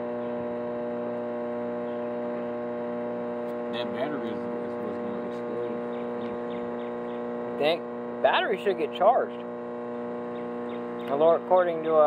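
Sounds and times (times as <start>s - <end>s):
microwave oven humming: 0.0s - 12.0s.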